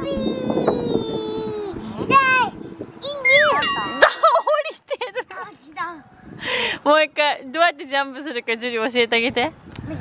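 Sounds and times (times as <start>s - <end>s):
bright metallic ding: 3.3s - 4.6s.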